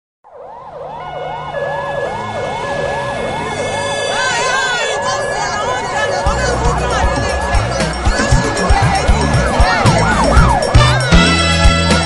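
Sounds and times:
emergency siren wailing: 0:00.2 - 0:12.0.

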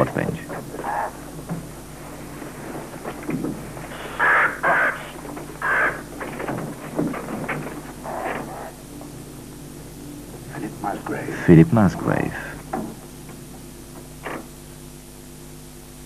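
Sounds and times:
low steady hum: 0:00.0 - 0:16.0
raven cawing: 0:00.7 - 0:01.3, 0:03.6 - 0:09.2.

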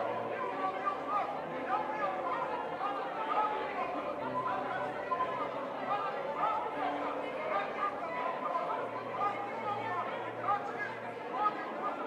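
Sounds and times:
congregation praying aloud: 0:00.0 - 0:12.0.

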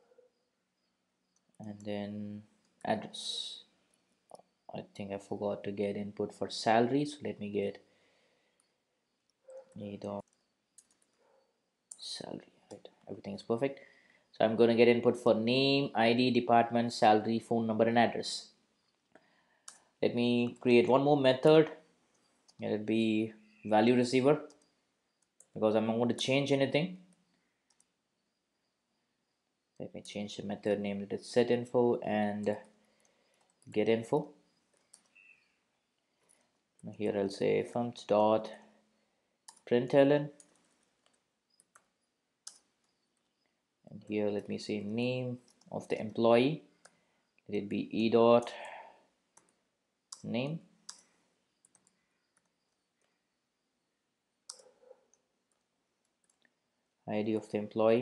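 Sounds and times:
computer keyboard typing clicks: 0:50.9 - 0:52.8, 0:54.5 - 0:54.7.

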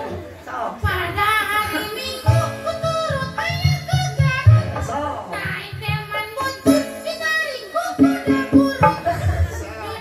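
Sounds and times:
drum beats: 0:00.9 - 0:10.0
keyboard: 0:01.8 - 0:10.0.

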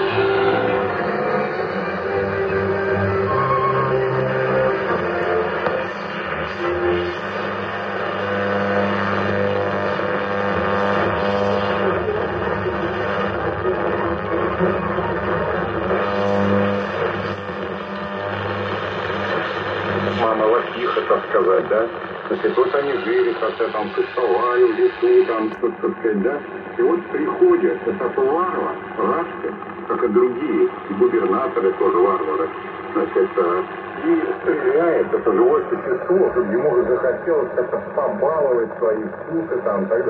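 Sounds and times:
radio music with long held notes: 0:00.0 - 0:40.0
radio speech: 0:20.1 - 0:40.0.

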